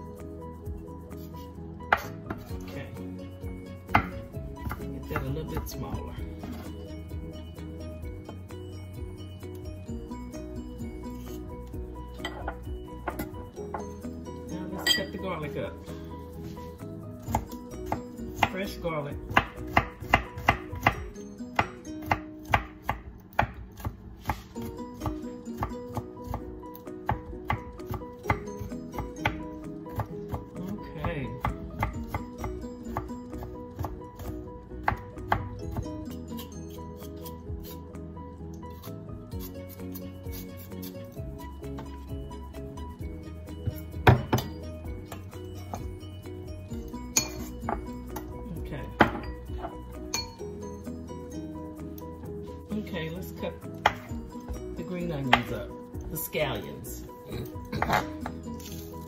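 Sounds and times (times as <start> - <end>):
knife chopping on wooden board: 1.9 - 2.5, 3.9 - 6.6, 17.2 - 18.6, 19.3 - 26.4, 27.1 - 35.9, 43.6 - 44.6, 53.8 - 54.1.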